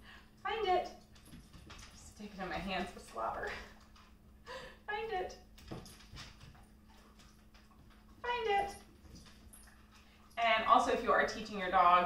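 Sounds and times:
claws ticking on hardwood floor: 0.9 - 4.3, 5.4 - 10.4.

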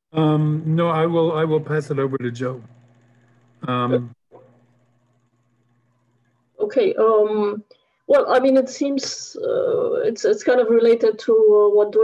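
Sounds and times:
faint steady hum: 0.2 - 12.0.

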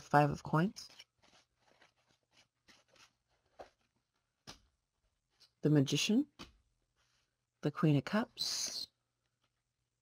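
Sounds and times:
cards being shuffled: 0.6 - 5.6.

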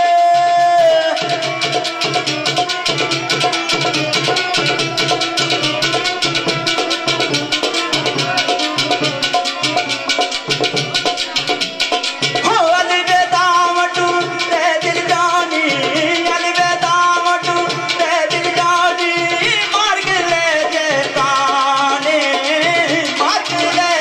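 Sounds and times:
fast steady drumming: 0.0 - 24.0.

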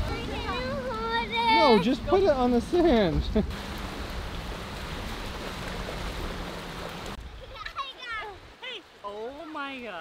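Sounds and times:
small waves washing ashore: 0.0 - 10.0.

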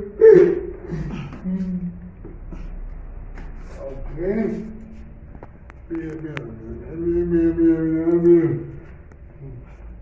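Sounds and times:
man gasping and grunting: 0.2 - 1.8.

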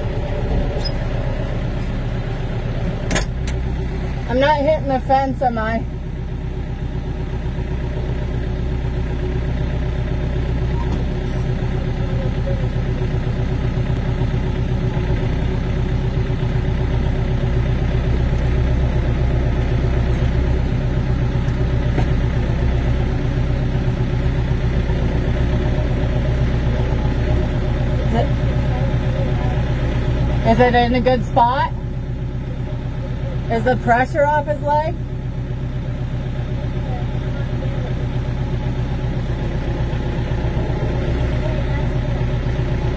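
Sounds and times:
tractor engine running: 0.0 - 42.9.

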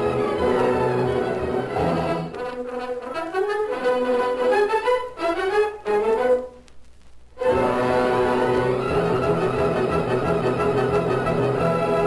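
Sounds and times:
orchestral music led by brass: 0.0 - 6.6, 7.4 - 12.0.

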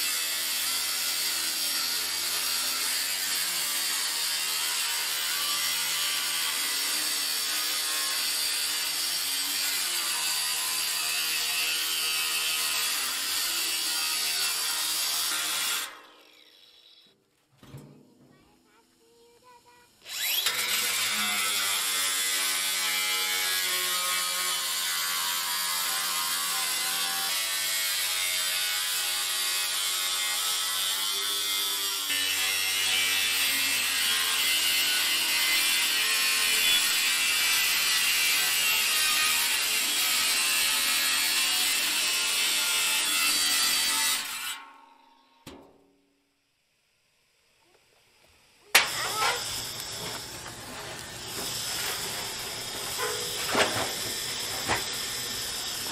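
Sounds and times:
angle grinder cutting metal: 0.0 - 17.1, 20.0 - 45.5, 48.6 - 55.9.

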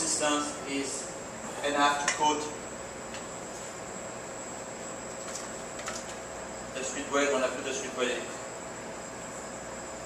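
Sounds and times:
kitchen ventilation noise: 0.0 - 10.0.

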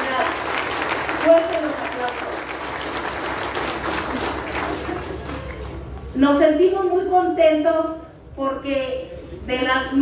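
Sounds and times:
audience applauding: 0.0 - 5.9.

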